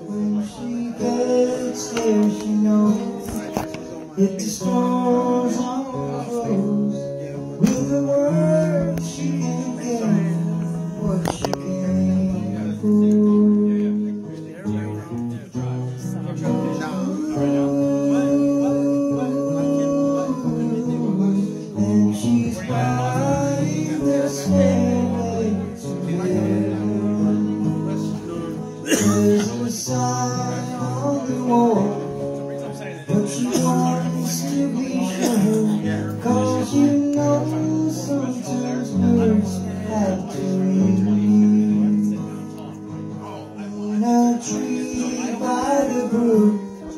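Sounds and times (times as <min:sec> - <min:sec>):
man singing: 0:00.0 - 0:46.9
strummed acoustic guitar: 0:00.0 - 0:46.9.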